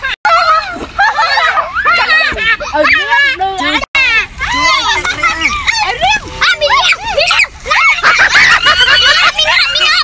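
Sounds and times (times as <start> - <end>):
children squealing and laughing: 0.0 - 10.0.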